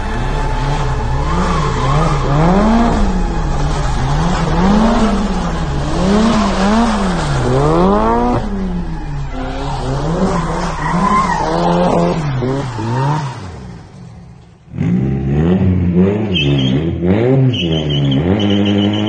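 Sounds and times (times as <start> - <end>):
car engine revving: 0.0 - 19.0
tyres skidding: 0.0 - 19.0.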